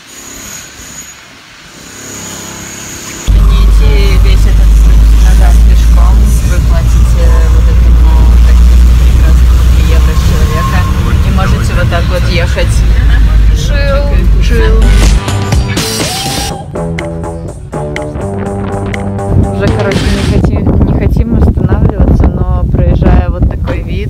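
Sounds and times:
vehicle engine and road rumble: 3.1 - 16.3, 17.2 - 24.0.

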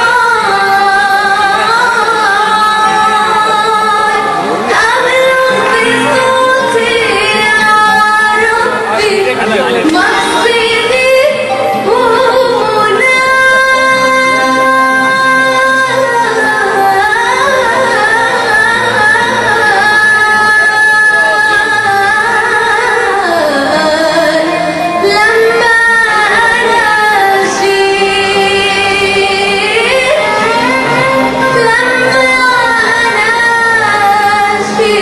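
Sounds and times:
instrumental accompaniment: 0.0 - 35.0
woman singing into microphone: 0.0 - 35.0.

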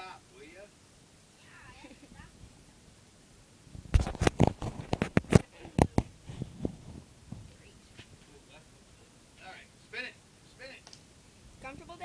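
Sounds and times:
faint rustling: 3.7 - 8.4.

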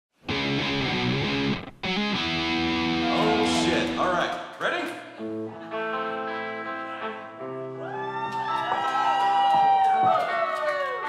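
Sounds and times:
distorted electric guitar: 0.2 - 4.2
rock band playing live: 0.3 - 4.0
person's voice: 3.0 - 4.9.

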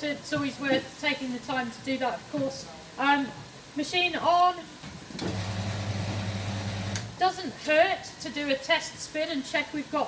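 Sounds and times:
drill motor humming: 5.2 - 7.1.

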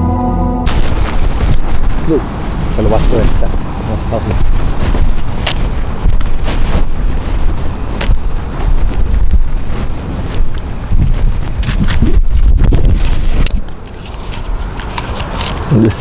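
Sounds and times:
wind buffeting microphone: 0.6 - 16.0.

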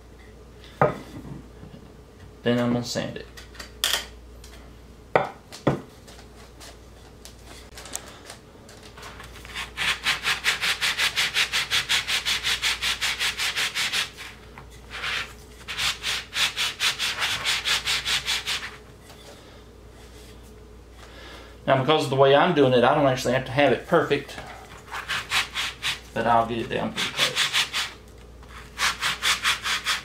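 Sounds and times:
wood sanding against sponge: 9.5 - 18.8, 24.8 - 30.0.

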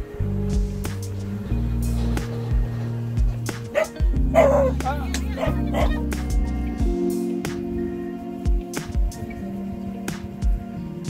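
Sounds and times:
music with steady low beat: 0.0 - 11.0
dog barking: 3.7 - 4.8, 5.4 - 6.0.

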